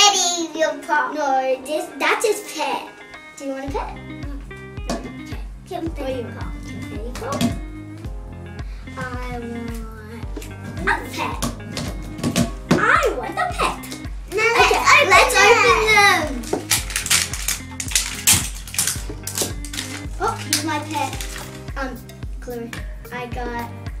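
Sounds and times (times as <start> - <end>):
young children's voices: 0.0 - 4.4, 9.0 - 11.5, 12.7 - 16.6, 20.0 - 23.8
background music with steady beat: 0.0 - 24.0.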